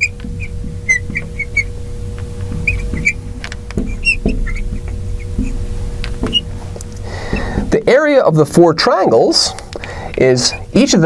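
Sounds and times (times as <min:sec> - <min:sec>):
marker squeaking on glass: 0:00.0 - 0:06.7, 0:10.2 - 0:11.0
steady low hum: 0:00.0 - 0:11.0.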